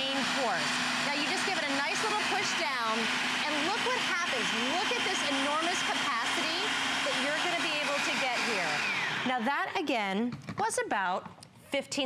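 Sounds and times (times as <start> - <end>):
electric motor humming: 0.0 - 9.6.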